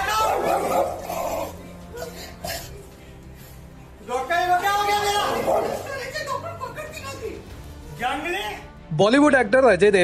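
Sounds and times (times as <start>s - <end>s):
man shouting angrily: 0.0s - 1.6s, 4.1s - 7.4s
background music: 0.0s - 10.0s.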